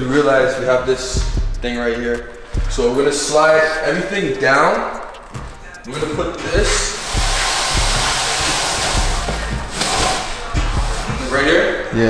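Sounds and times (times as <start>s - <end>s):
background music with steady beat: 0.0s - 12.0s
chair scraping across floor: 6.4s - 11.3s.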